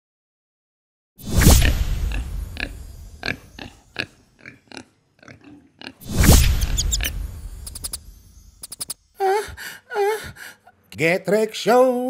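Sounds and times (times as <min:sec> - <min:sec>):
magic whoosh with chimes: 0:06.1 - 0:09.1
quick clicks: 0:06.4 - 0:08.0, 0:08.6 - 0:09.0.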